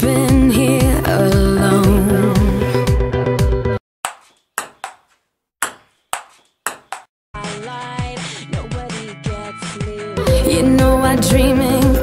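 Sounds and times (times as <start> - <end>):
pop song: 0.0 - 3.1, 7.4 - 12.0.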